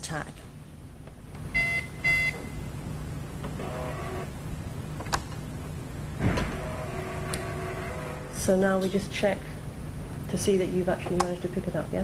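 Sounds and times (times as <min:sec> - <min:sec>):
card terminal short beeps: 0:01.6 - 0:02.6
receipt printer whirring: 0:03.4 - 0:04.4, 0:06.2 - 0:08.5.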